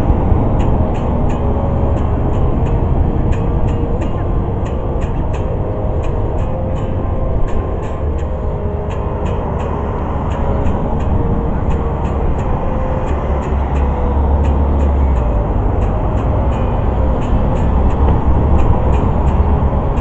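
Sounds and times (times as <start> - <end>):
acoustic guitar strumming: 0.0 - 20.0
heavy low rumble: 0.0 - 20.0.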